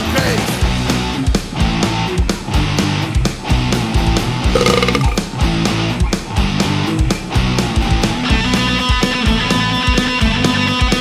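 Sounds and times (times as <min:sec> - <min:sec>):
short held pitched tone: 0:04.6 - 0:05.2.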